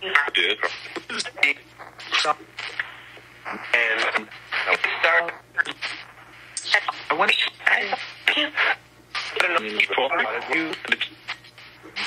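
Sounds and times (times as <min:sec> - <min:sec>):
faint steady hum: 0:00.0 - 0:12.0
radio-like sound: 0:00.0 - 0:12.0.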